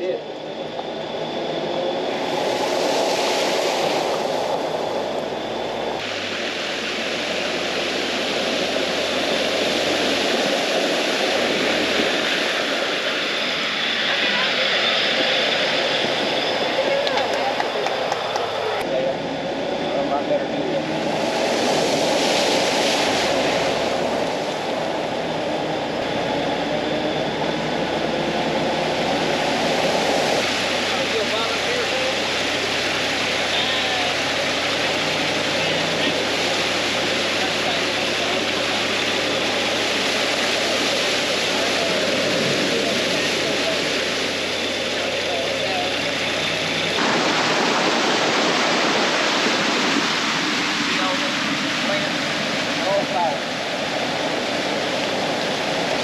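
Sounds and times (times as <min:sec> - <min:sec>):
engine droning: 0:00.0 - 0:56.0
tyres splashing through water: 0:20.9 - 0:56.0.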